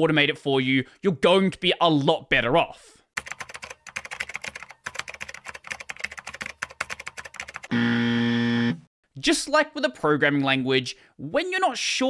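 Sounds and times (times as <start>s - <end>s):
fast typing on keyboard: 3.2s - 7.7s.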